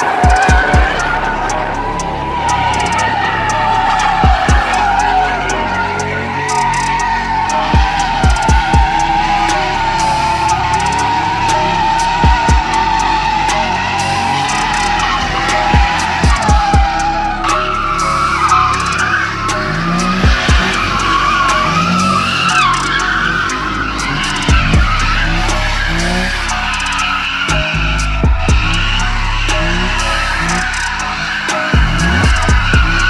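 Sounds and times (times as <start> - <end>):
car tyres squealing: 0.0 - 33.0
loud music with heavy drum beat: 0.0 - 33.0.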